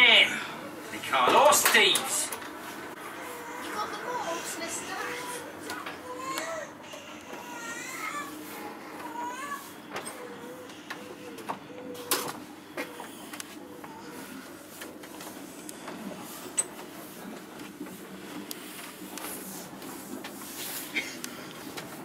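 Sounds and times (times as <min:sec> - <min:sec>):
indistinct voices: 0:00.0 - 0:12.2.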